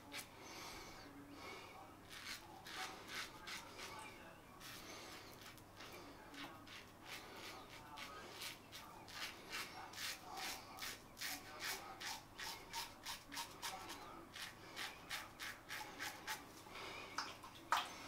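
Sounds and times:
razor scraping stubble: 2.0 - 16.4.

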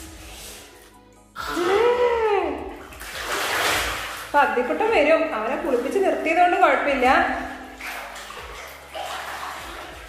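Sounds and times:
water splashing in bathtub: 0.0 - 10.0.

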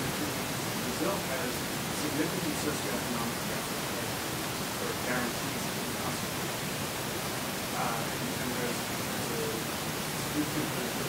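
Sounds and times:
recording hiss: 0.0 - 11.0
faint distant speech: 7.7 - 11.0.

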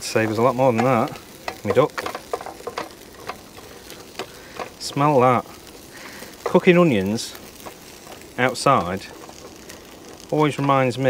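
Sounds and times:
onions sizzling in a pan: 0.0 - 11.0
spatula clicking and scraping: 0.2 - 10.9.

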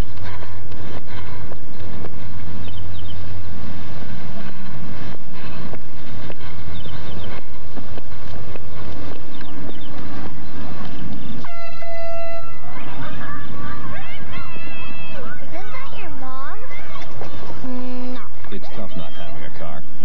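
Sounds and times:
vehicle rumble: 0.0 - 20.0
air horn blast: 11.4 - 12.8, 17.6 - 18.3.

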